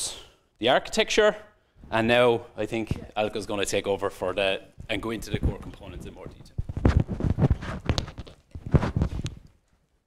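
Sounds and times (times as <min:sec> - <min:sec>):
footsteps: 0:04.7 - 0:09.8
knocks and thumps from handling: 0:04.8 - 0:09.5.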